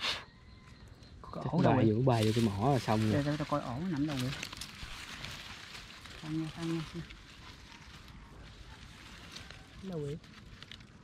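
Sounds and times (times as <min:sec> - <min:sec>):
grass and leaves rustling: 0:01.4 - 0:11.0.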